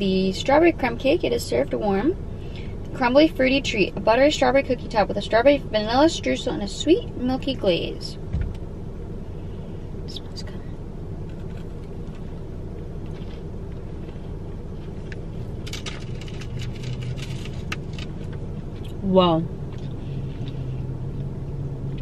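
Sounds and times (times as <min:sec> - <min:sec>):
low car cabin hum: 0:00.0 - 0:22.0
person chewing: 0:11.3 - 0:19.0, 0:19.7 - 0:21.3.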